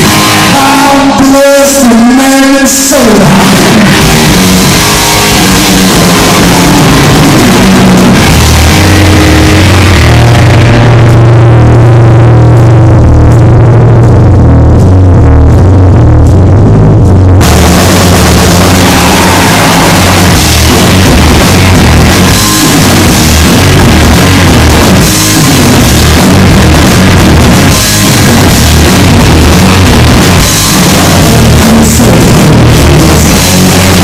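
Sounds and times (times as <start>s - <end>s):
loud rock band instrumental: 0.0s - 12.8s, 17.4s - 34.0s.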